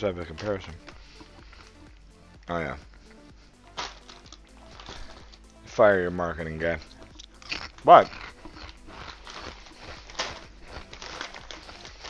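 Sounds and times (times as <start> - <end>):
snack bag crinkling: 3.8 - 5.5, 6.8 - 12.0.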